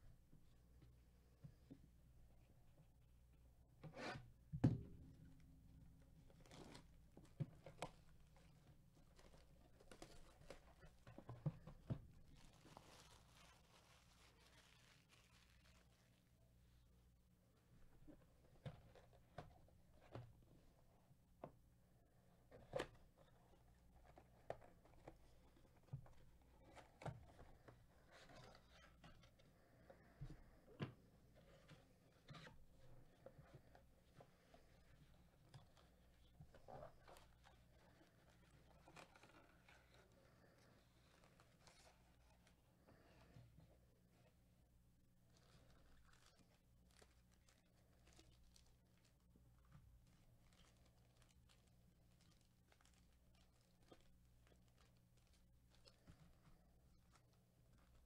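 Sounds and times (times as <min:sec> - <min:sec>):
soft tearing rustle: 0:06.2 - 0:16.9, 0:22.4 - 0:44.4, 0:45.1 - 0:58.0.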